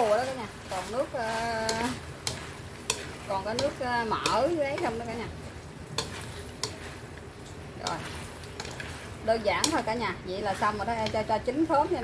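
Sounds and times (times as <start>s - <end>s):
food sizzling in a frying pan: 0.0s - 12.0s
chopsticks clicking against pan: 0.7s - 5.2s, 5.8s - 12.0s.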